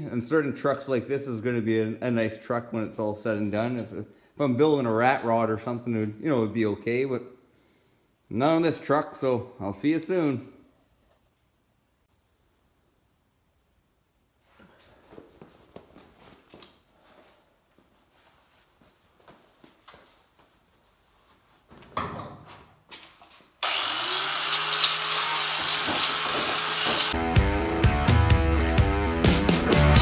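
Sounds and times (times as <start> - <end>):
footsteps: 14.5 - 23.6, 25.5 - 27.2
wire wheel grinder on metal: 23.6 - 27.2
rock music: 27.1 - 30.0.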